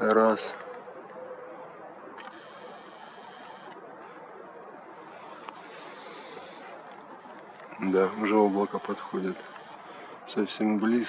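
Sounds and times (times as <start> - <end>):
faint steady hiss: 0.0 - 11.0.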